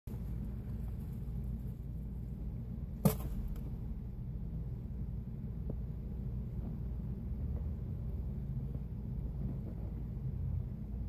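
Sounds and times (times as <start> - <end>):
low background hum: 0.1 - 11.0.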